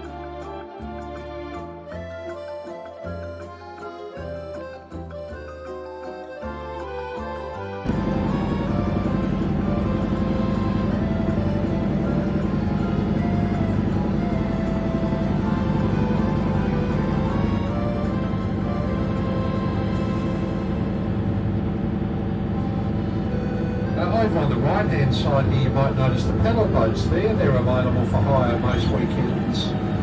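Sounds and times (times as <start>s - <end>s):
background music: 0.0s - 30.0s
boat motor hum: 0.0s - 30.0s.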